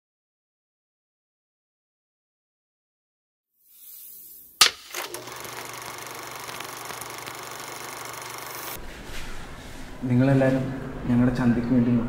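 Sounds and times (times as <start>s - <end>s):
mechanical hum: 4.4s - 12.0s
clapperboard snap: 4.6s - 7.0s.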